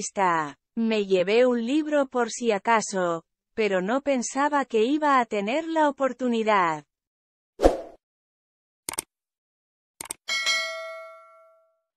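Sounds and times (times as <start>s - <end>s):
short clicks: 8.9s - 9.1s, 10.0s - 10.2s
notification bell ding: 10.3s - 11.7s.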